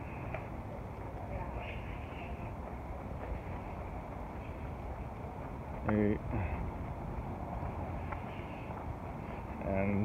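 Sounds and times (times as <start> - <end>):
distant traffic rumble: 0.0 - 10.0.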